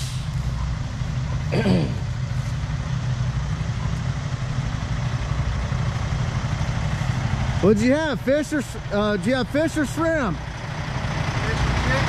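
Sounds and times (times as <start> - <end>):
diesel truck engine idling: 0.0 - 12.0.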